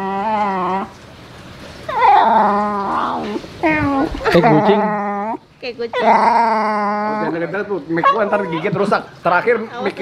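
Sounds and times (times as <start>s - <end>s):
dog whining yowl: 0.0s - 1.0s, 1.9s - 8.8s.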